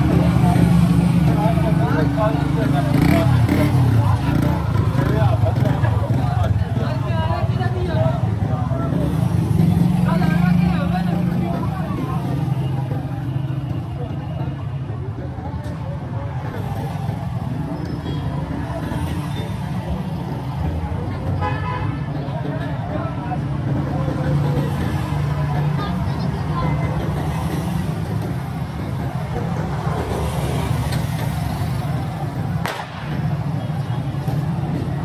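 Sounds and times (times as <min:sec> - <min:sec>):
street traffic rumbling: 0:00.0 - 0:35.0
motorcycle passing close: 0:02.7 - 0:06.2.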